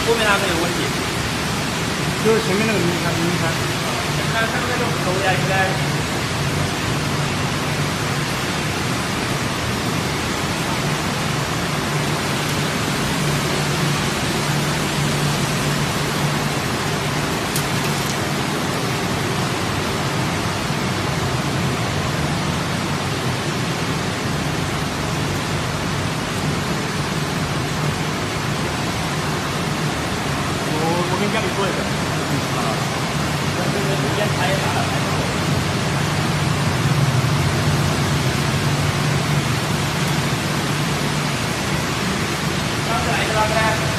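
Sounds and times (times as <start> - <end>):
low machinery hum: 0.0 - 43.9.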